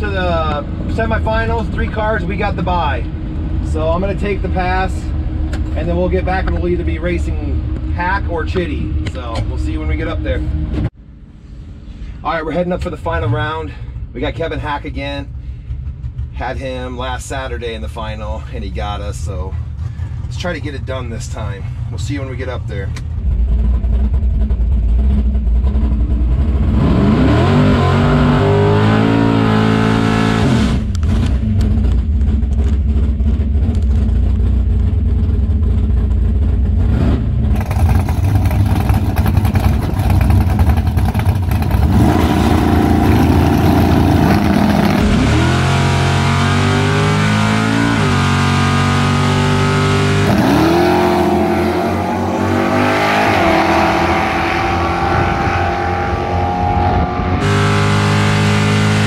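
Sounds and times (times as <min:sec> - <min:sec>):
race car engines revving: 0:22.9 - 0:59.0.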